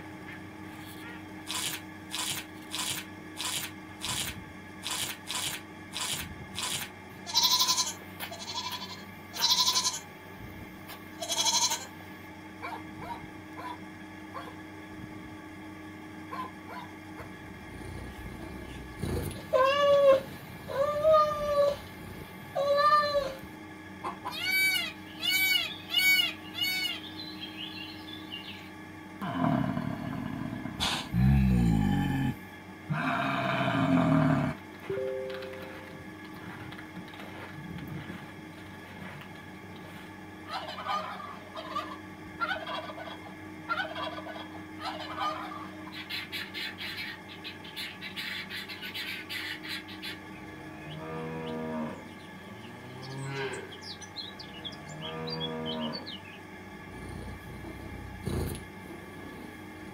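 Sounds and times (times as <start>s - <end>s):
turkey gobbling: 14.4s - 14.6s, 40.5s - 46.7s
cow mooing: 17.5s - 23.4s, 29.2s - 34.6s, 50.9s - 53.8s, 54.8s - 56.1s, 56.9s - 59.6s
peacock calling: 24.0s - 27.2s.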